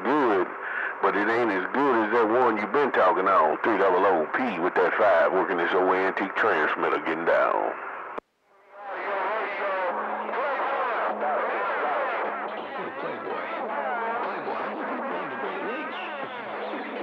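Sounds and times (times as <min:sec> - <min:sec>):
garbled voices through radio speaker: 0:00.0 - 0:08.0, 0:08.9 - 0:17.0
steady low hum: 0:00.0 - 0:08.2.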